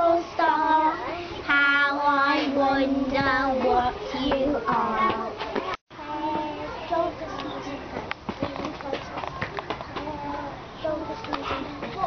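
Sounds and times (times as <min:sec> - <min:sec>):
children's voices: 0:00.0 - 0:12.0.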